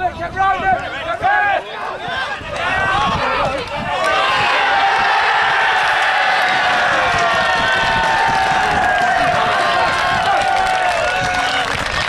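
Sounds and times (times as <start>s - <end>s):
football crowd cheering: 0.8s - 12.0s.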